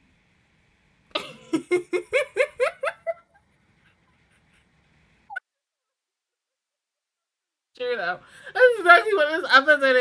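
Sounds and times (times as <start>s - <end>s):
woman laughing: 1.2s - 3.4s.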